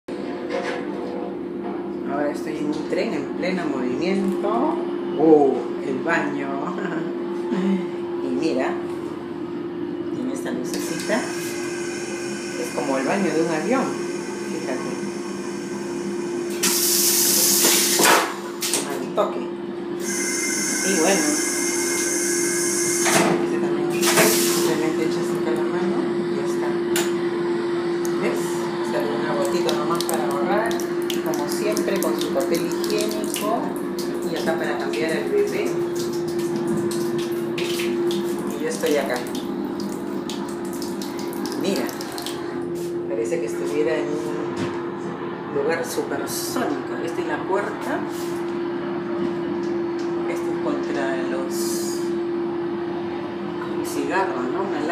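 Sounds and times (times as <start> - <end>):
constant hum: 23.0 - 54.9
tap running into sink: 29.4 - 42.4
rushes of water: 29.6 - 42.6.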